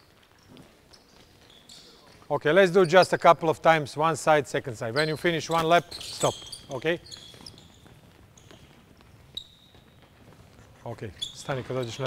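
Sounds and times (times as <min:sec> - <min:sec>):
footsteps on indoor court floor: 0:00.0 - 0:12.0.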